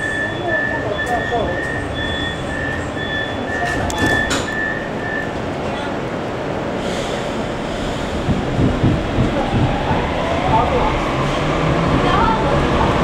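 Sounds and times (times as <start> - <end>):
train door warning beeps: 0.0 - 5.5
metro car rumble: 0.0 - 13.0.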